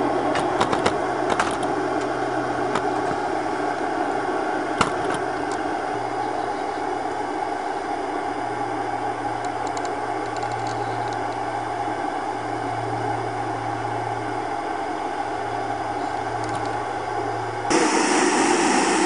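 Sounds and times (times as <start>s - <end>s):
low hum: 0.0s - 19.0s
steam engine rushing: 17.7s - 19.0s.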